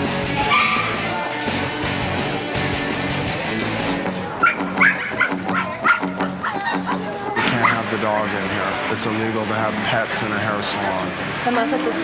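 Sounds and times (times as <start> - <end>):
background music: 0.0 - 12.0
dog yipping: 0.4 - 1.1, 4.4 - 7.8.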